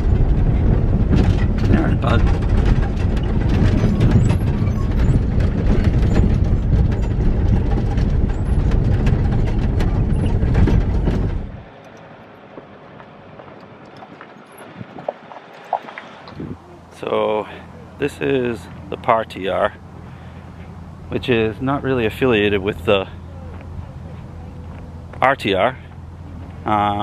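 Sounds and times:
tyres rumbling on gravel: 0:00.0 - 0:27.0
vehicle rattling: 0:00.0 - 0:27.0.

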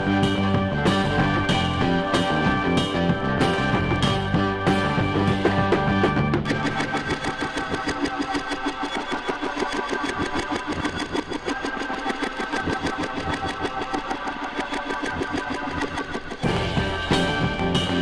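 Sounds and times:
rock music from vinyl: 0:00.0 - 0:18.0.

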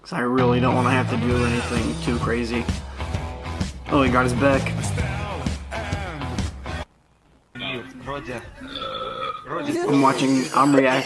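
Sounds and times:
man speaking: 0:07.6 - 0:08.8, 0:09.4 - 0:11.0.

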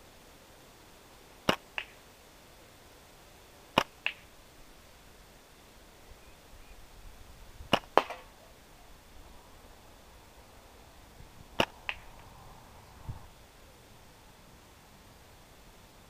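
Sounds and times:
shot clicking on target: 0:07.7 - 0:08.4, 0:11.6 - 0:12.2.

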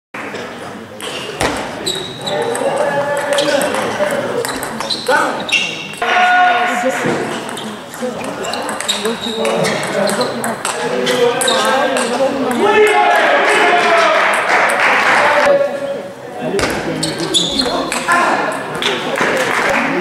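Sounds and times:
voices in sports hall: 0:00.2 - 0:20.0.

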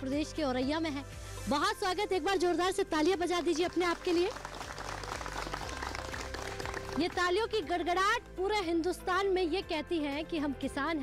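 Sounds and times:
faint background music: 0:00.0 - 0:11.0
crowd applauding: 0:03.4 - 0:07.4.

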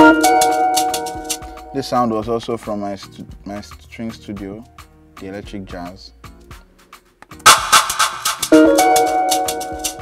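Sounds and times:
held synth chord: 0:00.0 - 0:01.4, 0:08.5 - 0:10.0
drums and percussion: 0:00.0 - 0:10.0.

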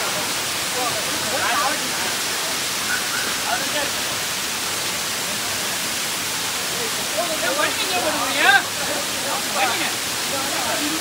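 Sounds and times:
people talking: 0:00.0 - 0:04.3, 0:06.6 - 0:11.0
waterfall rushing: 0:00.0 - 0:11.0.

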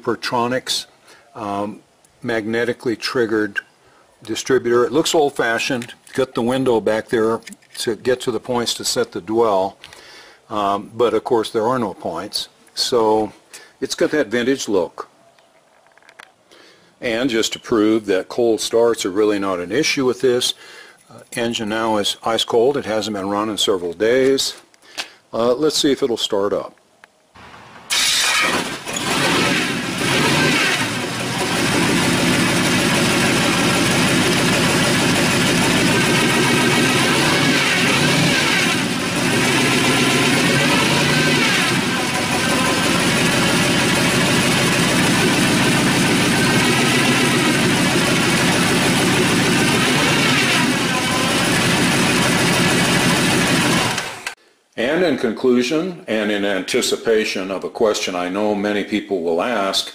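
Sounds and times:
engine cranking: 0:27.9 - 0:54.4
engine running and revving: 0:28.1 - 0:54.3.

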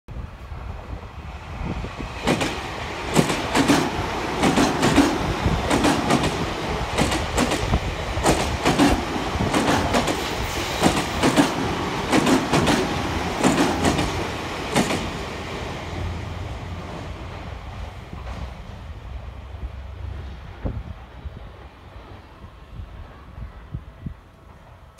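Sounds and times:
train running rumble: 0:00.3 - 0:24.9
train wheels clacking over rail joints: 0:02.2 - 0:15.2.

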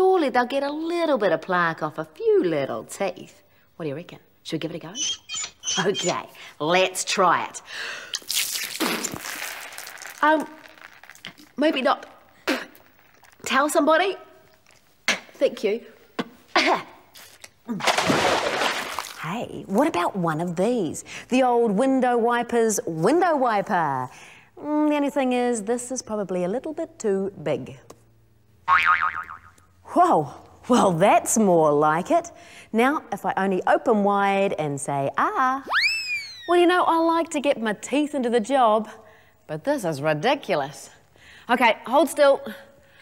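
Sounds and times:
water spraying from squeezed bottle: 0:08.1 - 0:11.5
cartoon boing twang: 0:28.7 - 0:29.6.

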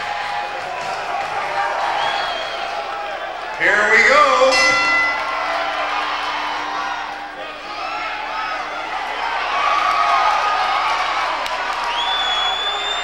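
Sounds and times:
crowd shouting and cheering: 0:00.0 - 0:13.0
boxing ring bell: 0:04.1 - 0:07.5.

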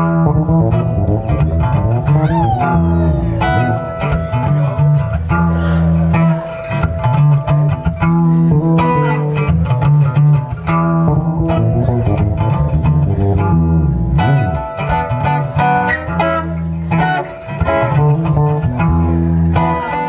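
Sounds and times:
acoustic guitar chords: 0:00.0 - 0:20.0
bass guitar low notes: 0:00.0 - 0:20.0.

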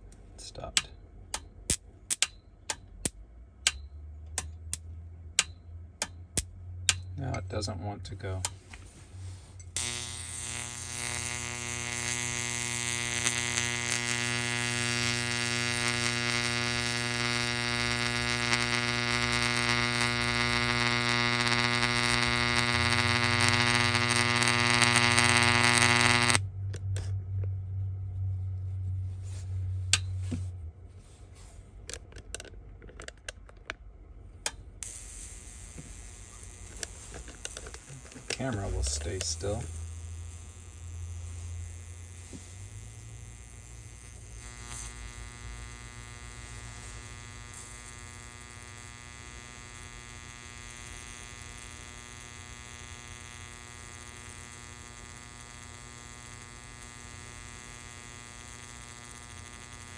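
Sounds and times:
low electrical hum: 0:00.0 - 0:59.9
electric arc buzzing: 0:09.7 - 0:26.5, 0:34.8 - 0:59.9.

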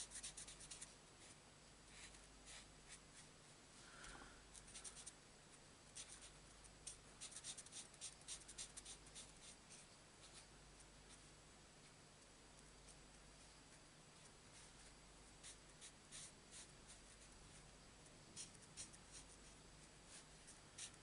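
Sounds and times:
marker scratching on cardstock: 0:00.0 - 0:03.3, 0:06.0 - 0:10.4, 0:15.4 - 0:17.4, 0:18.4 - 0:21.0.

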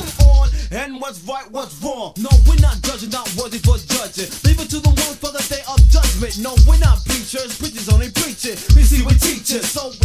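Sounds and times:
deep bass hit: 0:00.0 - 0:00.7, 0:02.3 - 0:02.9, 0:05.8 - 0:07.2
rapping over a beat: 0:00.0 - 0:10.0.

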